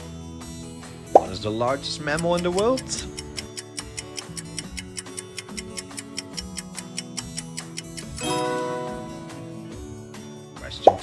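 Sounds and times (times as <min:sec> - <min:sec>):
background music of held notes: 0:00.0 - 0:11.0
timer ticking rapidly: 0:02.1 - 0:08.2.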